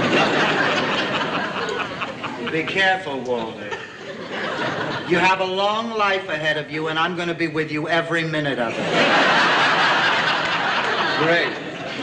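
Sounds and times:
studio audience laughing: 0.0 - 5.5, 8.7 - 12.0.

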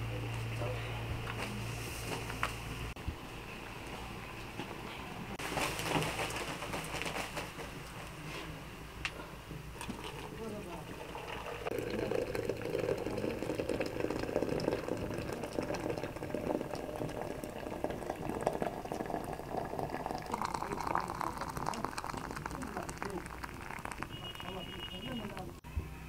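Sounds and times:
water pouring into a teapot: 9.8 - 25.4.

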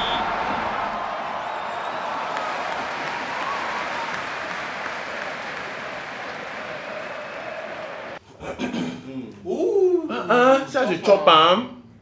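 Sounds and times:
crowd applause: 0.0 - 8.2.

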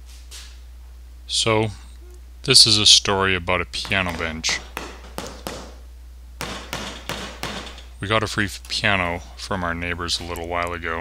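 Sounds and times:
hammer tapping nails: 3.8 - 5.8, 6.4 - 7.9.

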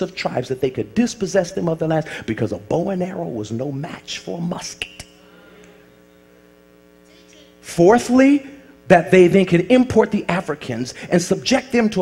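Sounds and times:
faint electrical mains hum: 0.0 - 12.0.

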